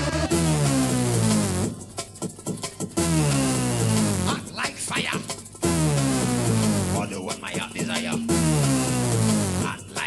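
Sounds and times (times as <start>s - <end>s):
rave music: 0.0s - 10.0s.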